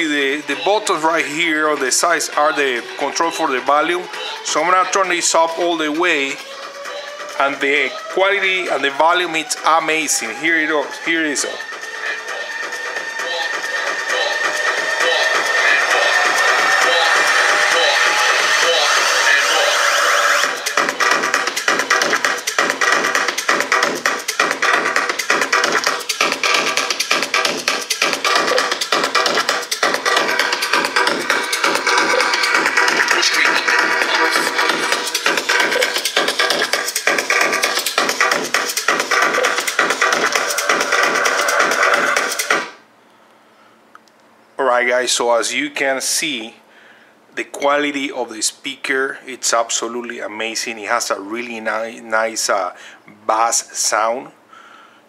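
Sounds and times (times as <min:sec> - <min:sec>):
electronic music through speaker: 0:00.0 - 0:42.8, 0:49.5 - 0:52.6.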